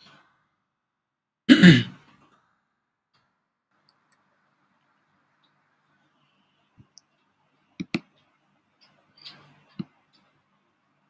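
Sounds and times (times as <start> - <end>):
person clearing throat: 1.5 - 2.0.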